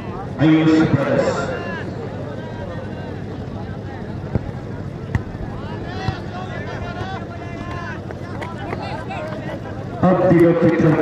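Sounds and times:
crowd murmuring and chattering: 0.0 - 11.0.

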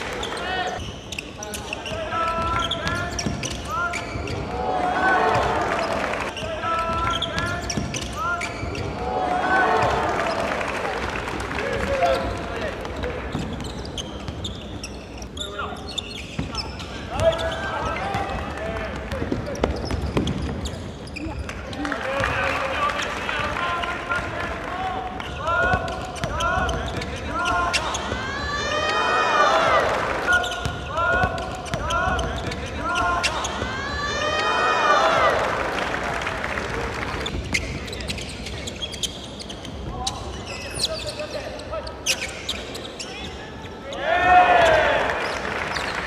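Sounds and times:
sneakers squeaking: 0.0 - 10.8, 11.8 - 24.3, 25.1 - 35.4, 37.0 - 46.0.

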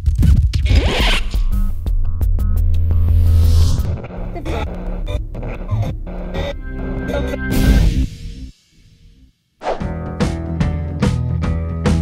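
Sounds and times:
electronic jingle with heavy bass: 2.7 - 8.6.

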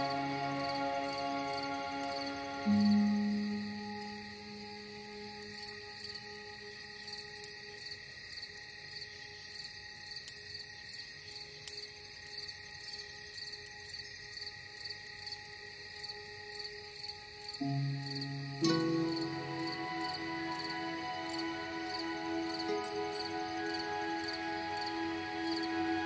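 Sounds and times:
low chord: 0.0 - 6.1, 17.6 - 26.0
crickets chirping: 0.0 - 26.0
slow ambient music: 0.0 - 26.0.

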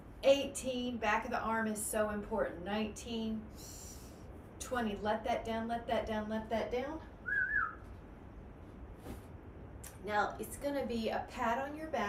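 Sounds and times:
short whistle-like note: 7.3 - 7.8.

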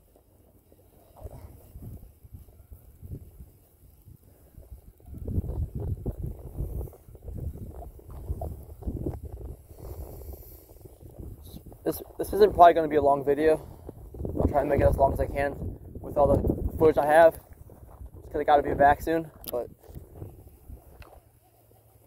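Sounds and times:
wind buffeting microphone: 1.2 - 21.3.

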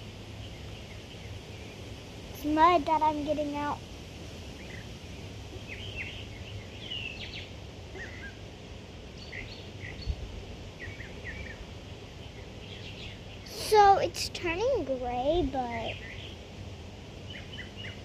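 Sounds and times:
low outdoor rumble: 0.0 - 18.0
songbirds chirping: 0.0 - 18.0.

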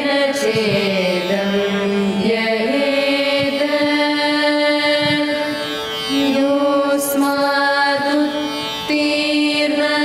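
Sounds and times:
girls singing a prayer: 0.0 - 10.0.

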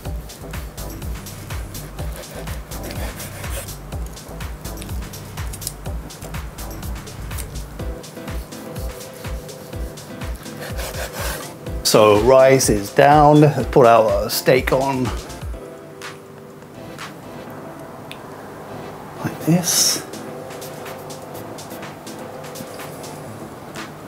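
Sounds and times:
knife scraping cutting board: 2.0 - 3.7, 10.4 - 11.6
knife sawing through steak: 2.0 - 3.8, 8.4 - 11.6.

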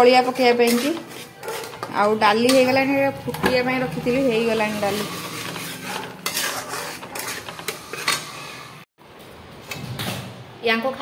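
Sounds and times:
metal spoon scraping a pan: 0.0 - 8.9.

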